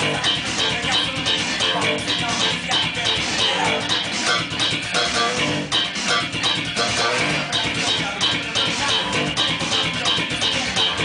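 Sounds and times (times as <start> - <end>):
drums: 0.0 - 11.0
full band playing: 0.0 - 11.0
slap bass guitar: 0.0 - 11.0.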